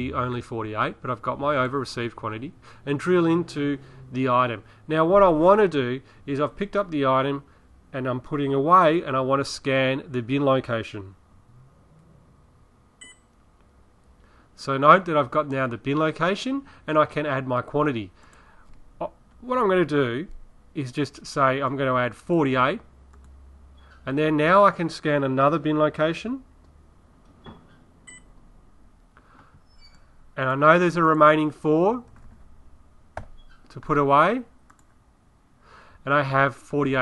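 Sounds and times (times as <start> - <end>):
barcode scanner beep: 13.0 - 13.3.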